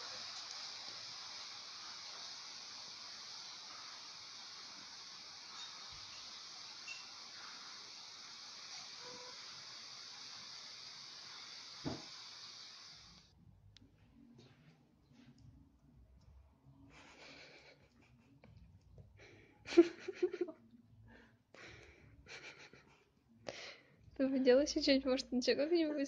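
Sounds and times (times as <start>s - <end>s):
high-pitched hiss: 0.0s - 13.3s, 19.7s - 20.5s.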